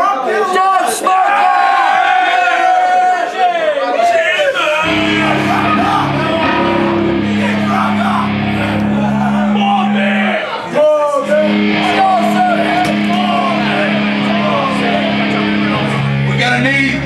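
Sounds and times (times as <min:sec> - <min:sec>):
voices shouting: 0:04.5 - 0:16.2
droning electric guitar chord: 0:04.8 - 0:17.0.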